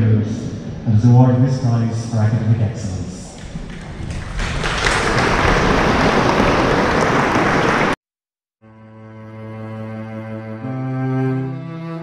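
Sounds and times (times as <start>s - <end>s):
large audience applauding: 3.4s - 8.0s.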